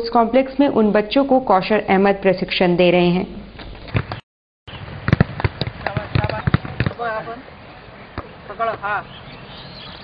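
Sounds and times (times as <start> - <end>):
footballs being kicked: 3.9 - 4.2, 4.8 - 7.0.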